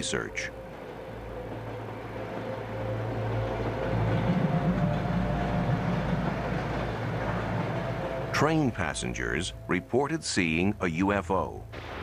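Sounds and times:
train rumbling: 0:00.0 - 0:12.0.

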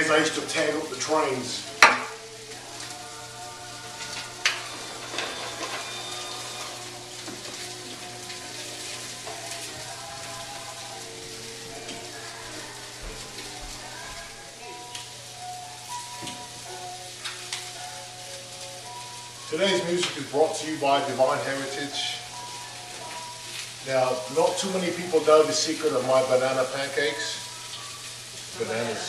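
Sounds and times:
quiet background music: 0:00.0 - 0:29.0
sausages sizzling in frying pan: 0:00.0 - 0:29.0.

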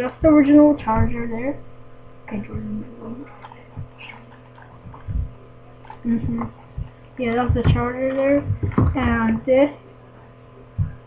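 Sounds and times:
electrical mains hum: 0:00.0 - 0:11.0
soft low thump: 0:00.2 - 0:01.3, 0:04.8 - 0:05.4, 0:06.1 - 0:09.4, 0:10.8 - 0:11.0.

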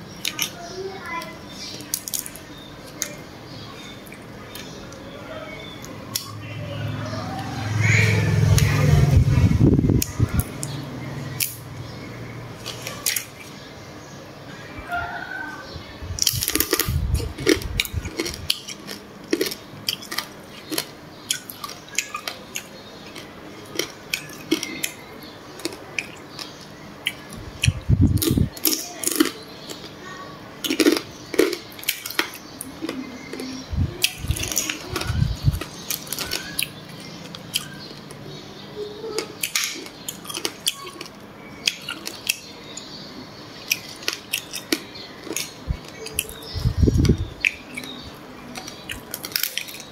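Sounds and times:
chewing: 0:16.2 - 0:25.0, 0:30.6 - 0:38.2, 0:39.1 - 0:42.9, 0:43.6 - 0:49.9.

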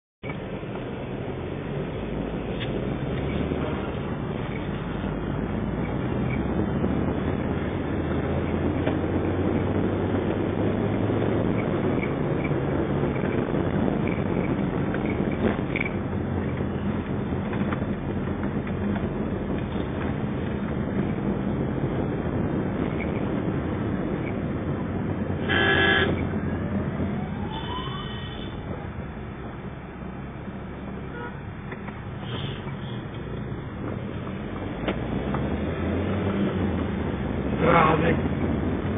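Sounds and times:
car engine and road noise: 0:00.2 - 0:38.9
vehicle horn honking: 0:25.4 - 0:26.3, 0:31.1 - 0:31.4.

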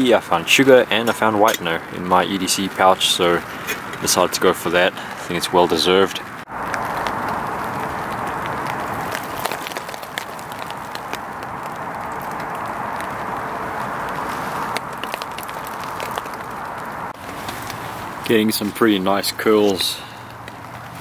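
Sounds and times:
rain on fabric: 0:06.3 - 0:19.2, 0:20.1 - 0:21.0.

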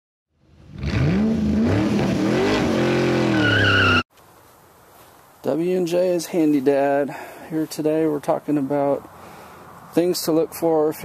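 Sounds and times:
engine revving: 0:00.5 - 0:04.0
high squeal: 0:03.3 - 0:04.1.

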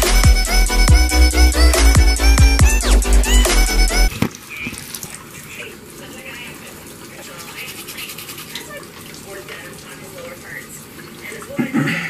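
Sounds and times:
faucet running into sink: 0:04.1 - 0:12.0
toothbrush scrubbing teeth: 0:07.3 - 0:09.7.

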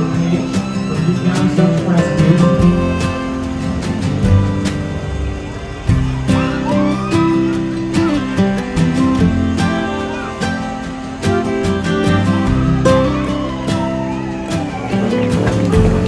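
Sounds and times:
guitar music with beat: 0:00.0 - 0:16.0.

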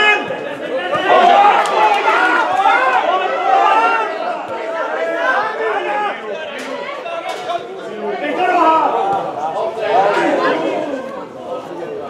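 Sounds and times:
crowd chatter: 0:00.0 - 0:12.0.

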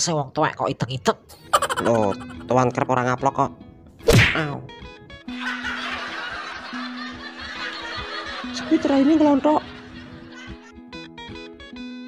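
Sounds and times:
background music: 0:00.0 - 0:12.0
person snickering: 0:01.4 - 0:02.4.

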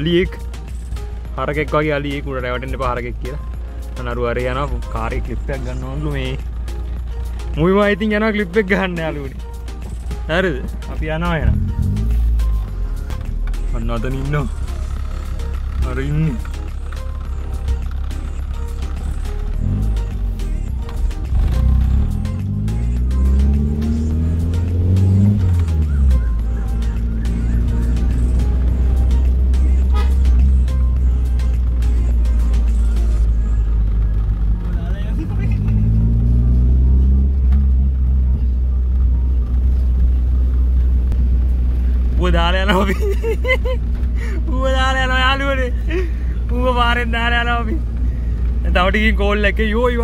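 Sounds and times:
car engine and road drone: 0:00.0 - 0:50.0.

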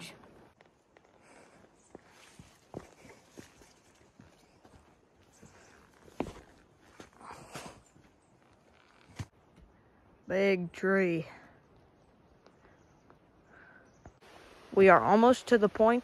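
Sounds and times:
footsteps on wooden bridge: 0:00.2 - 0:08.2.

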